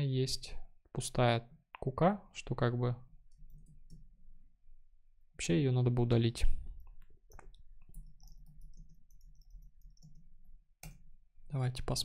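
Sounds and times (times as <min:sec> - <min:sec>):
computer mouse clicks: 0:06.8 - 0:11.0
keyboard clicks: 0:06.8 - 0:11.0.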